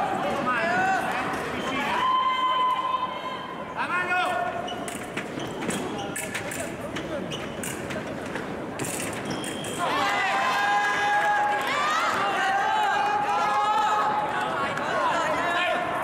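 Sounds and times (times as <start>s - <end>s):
people shouting: 9.8s - 16.0s.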